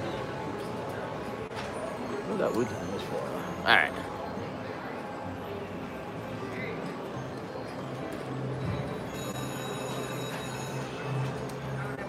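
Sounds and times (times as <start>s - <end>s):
slot machine ringing tones: 9.0s - 11.3s.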